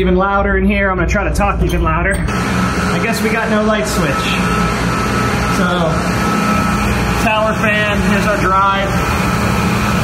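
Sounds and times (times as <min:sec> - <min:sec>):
high-pitched tone: 0:01.6 - 0:08.4
pump motors humming: 0:02.2 - 0:10.0.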